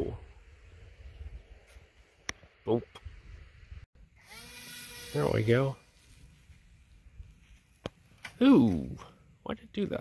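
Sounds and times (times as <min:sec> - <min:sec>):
electric motor whine: 0:04.2 - 0:05.5.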